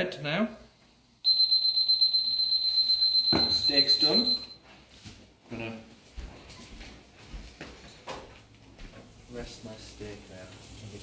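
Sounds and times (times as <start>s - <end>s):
pulsing timer alarm tone: 1.3s - 4.6s.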